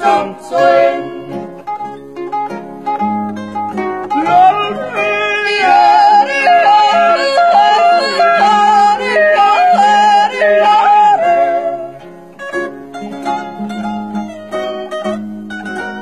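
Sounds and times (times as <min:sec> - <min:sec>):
people yodeling: 0:00.0 - 0:01.4, 0:04.2 - 0:12.1
plucked-string accompaniment: 0:00.0 - 0:16.0.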